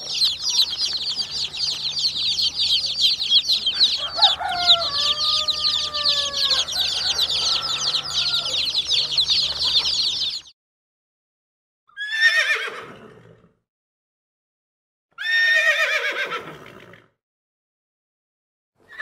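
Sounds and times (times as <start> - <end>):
baby chicks peeping: 0.0 - 10.5
pony whinnying: 12.0 - 13.1, 15.2 - 16.8.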